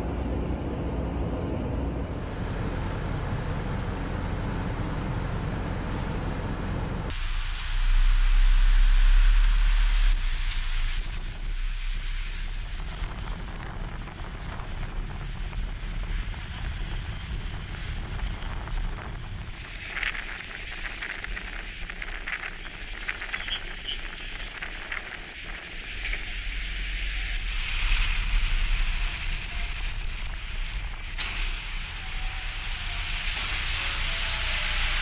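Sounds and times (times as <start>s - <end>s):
bus engine rumble: 0.0s - 35.0s
hissy outdoor noise: 7.1s - 14.2s, 17.4s - 35.0s.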